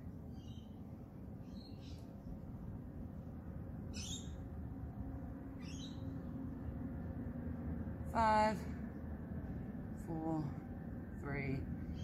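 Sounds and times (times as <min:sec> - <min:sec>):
low background hum: 0:00.0 - 0:12.0
bird calling: 0:03.9 - 0:04.4, 0:05.6 - 0:06.1.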